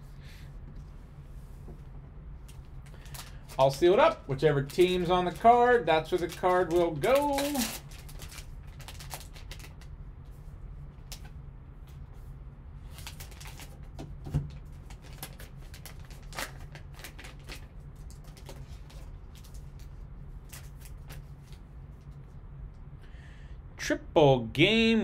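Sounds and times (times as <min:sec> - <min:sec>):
steady low hum: 0:00.0 - 0:25.0
plastic packaging crinkling: 0:02.5 - 0:09.9, 0:12.8 - 0:21.6.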